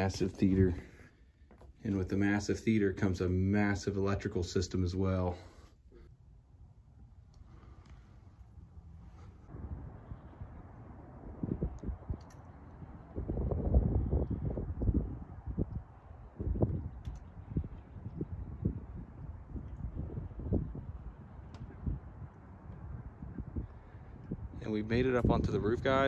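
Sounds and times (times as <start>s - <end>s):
wind buffeting microphone: 9.5s - 26.0s.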